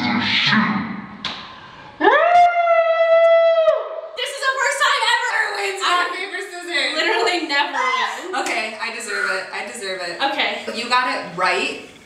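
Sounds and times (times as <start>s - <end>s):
woman screaming: 7.7s - 8.2s.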